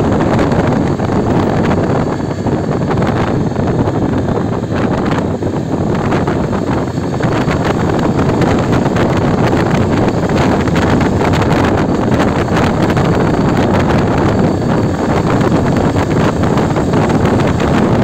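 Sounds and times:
motorcycle engine: 0:00.0 - 0:18.0
road noise: 0:00.0 - 0:18.0
wind buffeting microphone: 0:00.0 - 0:18.0.

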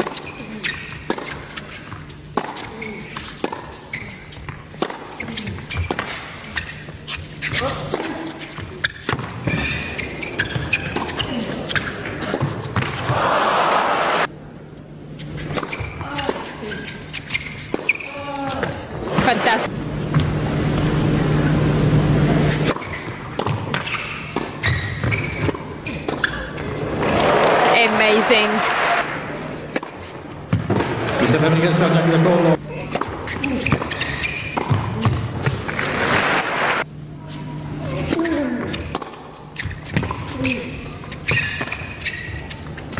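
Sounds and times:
racket striking tennis ball: 0:00.0 - 0:03.8, 0:04.4 - 0:06.7, 0:15.4 - 0:16.5, 0:22.5 - 0:27.3, 0:32.8 - 0:36.4, 0:38.0 - 0:42.6
sneakers squeaking on court: 0:00.0 - 0:13.2, 0:15.1 - 0:19.4, 0:22.4 - 0:27.1, 0:32.6 - 0:35.9, 0:37.2 - 0:42.9
tennis ball struck by rackets: 0:04.7 - 0:05.1, 0:22.6 - 0:26.4, 0:32.9 - 0:36.2.

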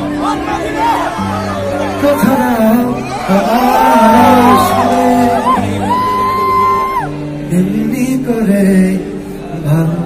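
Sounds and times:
crowd cheering: 0:00.0 - 0:07.4.

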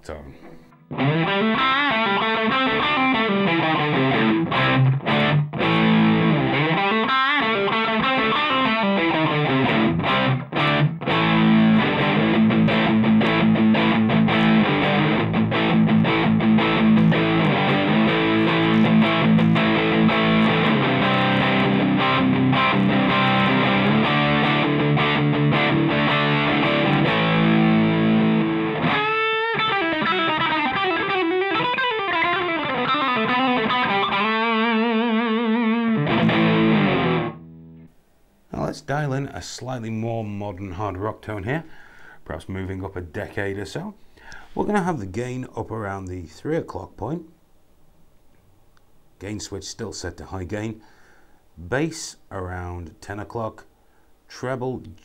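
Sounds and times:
distorted electric guitar riff: 0:00.0 - 0:37.9.

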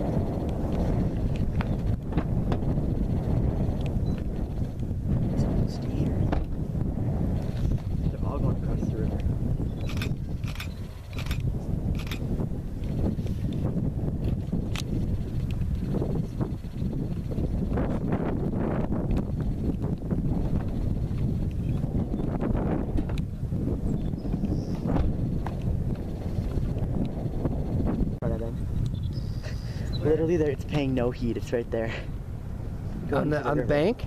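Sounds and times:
rumble of running hooves: 0:00.0 - 0:34.0.

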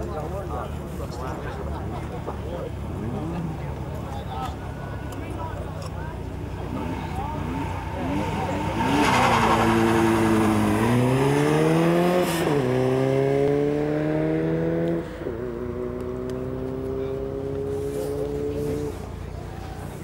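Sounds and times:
car engine accelerating hard: 0:06.5 - 0:20.0.

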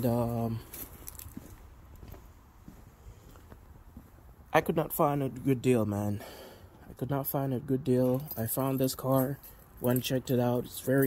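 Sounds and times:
faint soft footsteps: 0:00.0 - 0:04.4.

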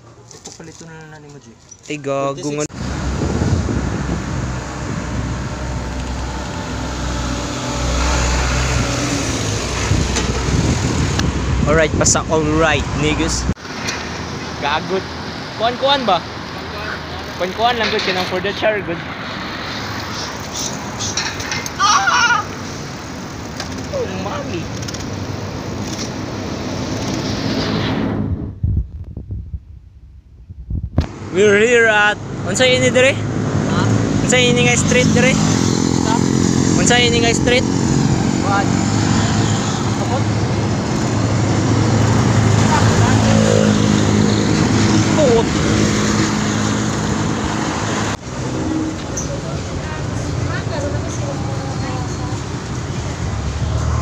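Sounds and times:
quiet traffic background: 0:00.0 - 0:54.0
road noise: 0:00.0 - 0:54.0
person calling out: 0:02.4 - 0:02.7, 0:21.7 - 0:22.6
wind rushing on microphone: 0:02.6 - 0:13.6, 0:25.7 - 0:48.2
person shouting: 0:21.8 - 0:22.6
low thumps: 0:28.0 - 0:31.2.

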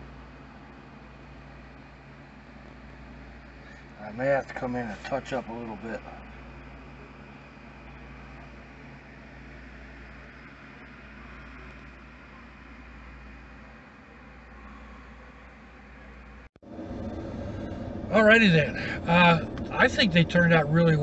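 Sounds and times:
low hum and hiss: 0:00.0 - 0:21.0.

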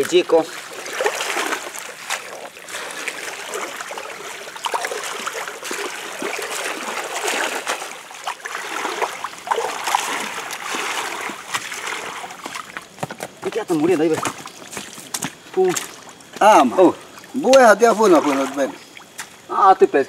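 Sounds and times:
stream water splashing: 0:00.0 - 0:19.7.

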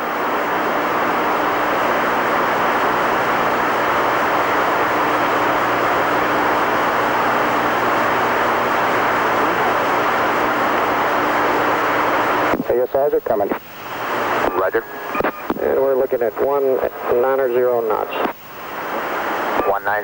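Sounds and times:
faint low hum: 0:07.7 - 0:20.0
radio channel hiss: 0:11.8 - 0:20.0.

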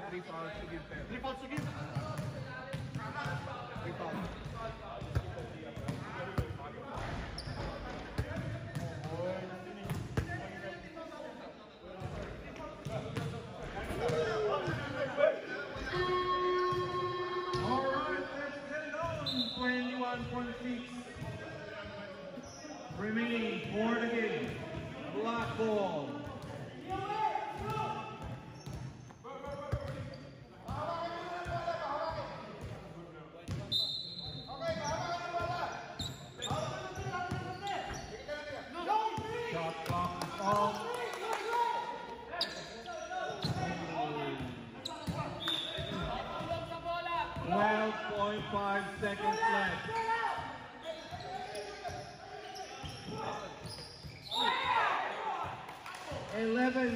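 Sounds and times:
basketball bouncing on court: 0:01.5 - 0:07.6, 0:08.2 - 0:09.2, 0:27.6 - 0:28.9.

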